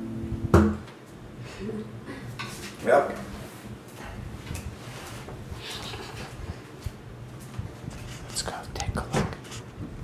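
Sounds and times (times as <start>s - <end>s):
person whispering: 8.4s - 9.2s.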